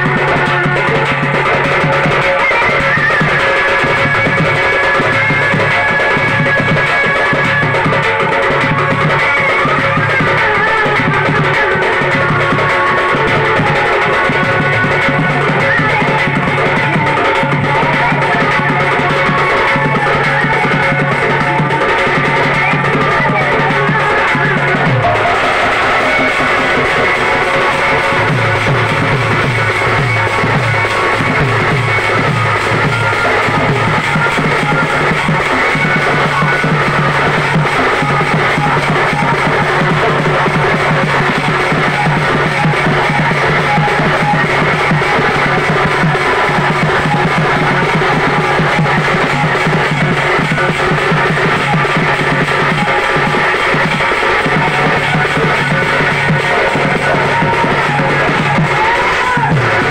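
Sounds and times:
barrel drum beating: 0.0 - 59.9.

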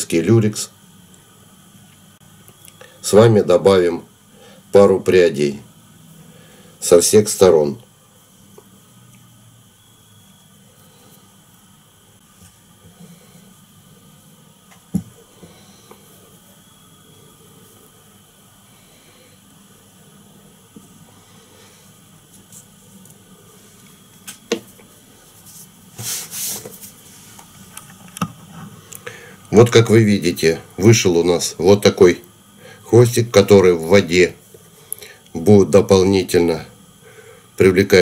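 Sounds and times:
low room hiss: 0.0 - 38.0.

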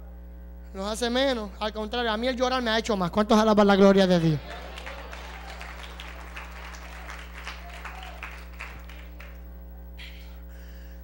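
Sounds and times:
steady electrical hum: 0.0 - 11.0
congregation applauding: 3.8 - 9.6.

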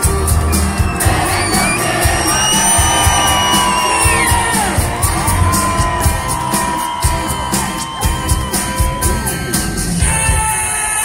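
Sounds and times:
long held high notes: 0.0 - 10.8
live rock band playing: 0.0 - 11.0.

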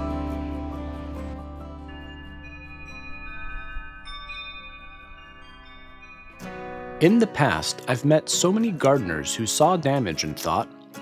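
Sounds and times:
chime-like logo jingle: 0.0 - 7.9.

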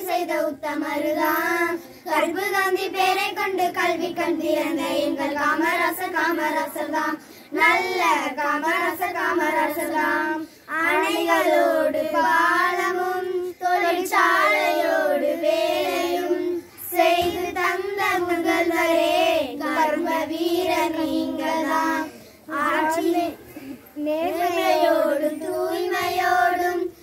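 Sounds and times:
girls singing in unison: 0.0 - 27.0.

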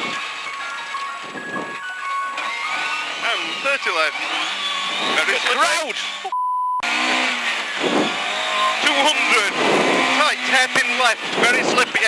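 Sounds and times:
road noise: 0.0 - 12.0
censor bleep tone: 6.3 - 6.8.

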